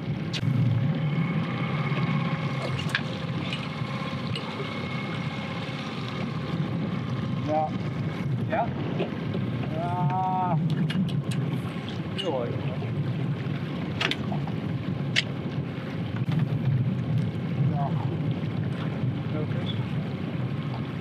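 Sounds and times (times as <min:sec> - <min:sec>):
outboard motor running: 0:00.0 - 0:21.0
wind buffeting microphone: 0:00.0 - 0:21.0.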